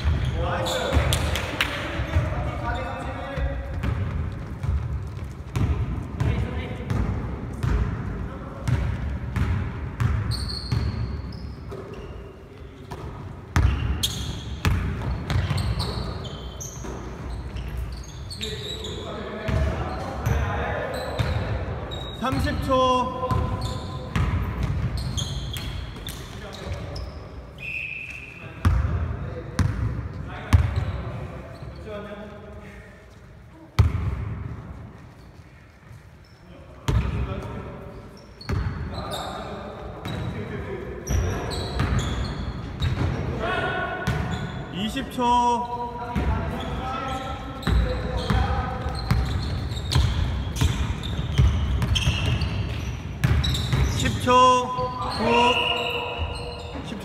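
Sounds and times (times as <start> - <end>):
sneaker squeaks: 0.0 - 1.4, 2.0 - 7.0, 8.6 - 28.9, 30.5 - 33.2, 34.8 - 43.3, 44.0 - 57.0.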